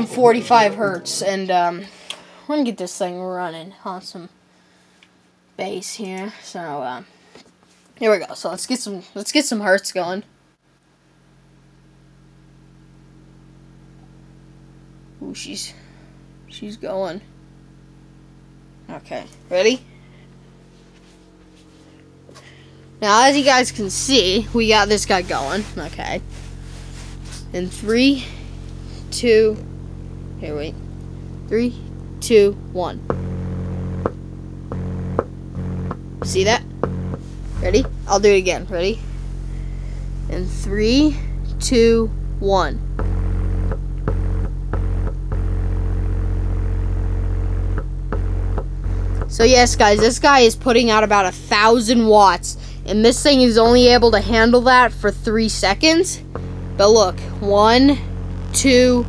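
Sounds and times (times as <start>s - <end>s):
subwoofer low bass test tone: 0.0s - 2.1s, 10.6s - 59.0s
hum of overtones: 0.0s - 7.8s, 10.2s - 59.0s.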